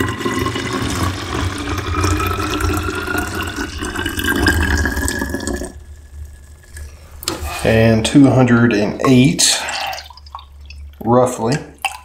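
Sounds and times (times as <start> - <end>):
water pouring into a bottle: 0.0 - 7.6.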